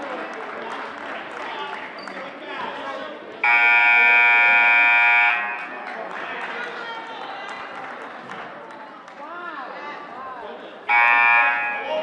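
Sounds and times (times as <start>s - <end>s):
crowd chatter: 0.0s - 12.0s
scoreboard buzzer horn blast: 3.4s - 5.7s, 10.9s - 11.9s.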